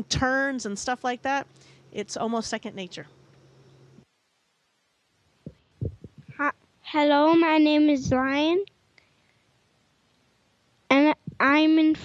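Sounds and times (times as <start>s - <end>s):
microphone handling thumps: 5.4s - 6.4s, 8.0s - 8.3s.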